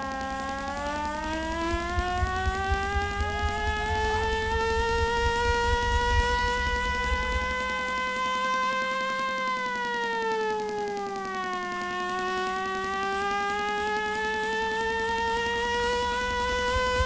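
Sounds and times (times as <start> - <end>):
electronic music: 0.0 - 17.0
handheld siren wailing: 0.0 - 17.0
low pulsing bass: 1.3 - 8.3.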